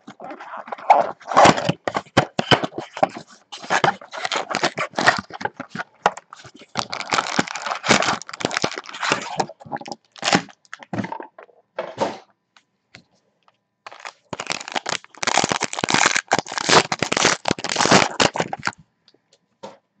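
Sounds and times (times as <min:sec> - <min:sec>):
plastic wrap crackling and rustling: 0:00.0 - 0:11.0, 0:13.9 - 0:18.8
cardboard tearing: 0:00.7 - 0:09.5, 0:10.2 - 0:10.5, 0:13.9 - 0:18.7.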